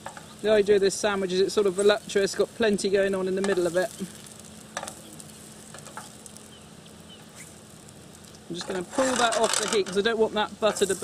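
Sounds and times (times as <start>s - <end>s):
butter and mushrooms sizzling: 0.0s - 11.0s.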